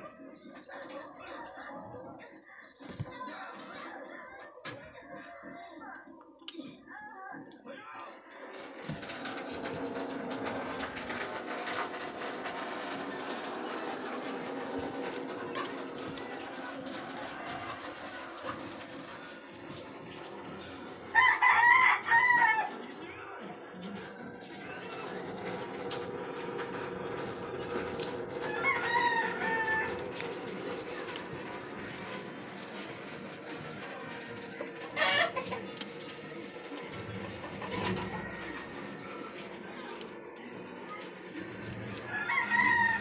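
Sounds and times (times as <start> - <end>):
steady background hum: 8.2 - 43.0.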